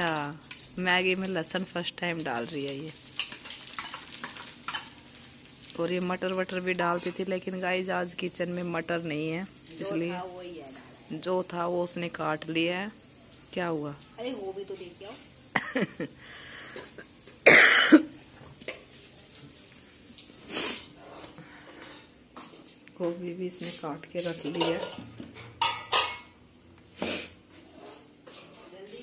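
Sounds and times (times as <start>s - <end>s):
spices sizzling in hot oil: 0.0s - 16.0s, 18.1s - 21.0s, 23.5s - 26.4s
woman laughing: 15.5s - 16.2s
woman coughing: 15.6s - 16.0s, 17.4s - 18.1s.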